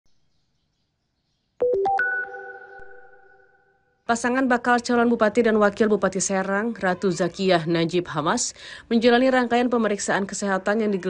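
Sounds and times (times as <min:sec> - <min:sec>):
electronic chime: 0:01.6 - 0:03.9.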